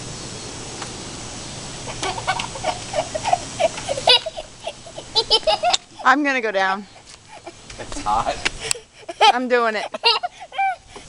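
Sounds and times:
low background hum: 0.0 - 11.0
small child whining and crying: 10.3 - 11.0.

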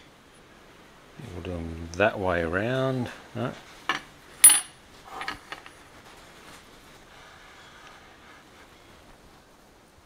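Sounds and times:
metal blocks knocking: 3.9 - 5.6
metallic clink: 4.4 - 5.7.

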